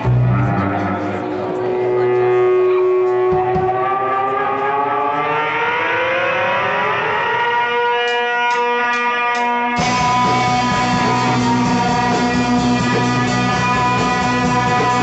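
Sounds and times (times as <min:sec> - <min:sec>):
guitar strums: 0:00.0 - 0:04.1, 0:08.0 - 0:15.0
band playing: 0:00.0 - 0:15.0
electric guitar droning chord: 0:00.0 - 0:15.0.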